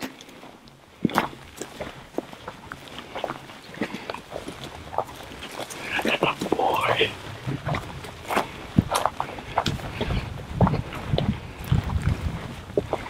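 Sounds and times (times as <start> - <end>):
footsteps on dry grass: 0.0 - 13.0.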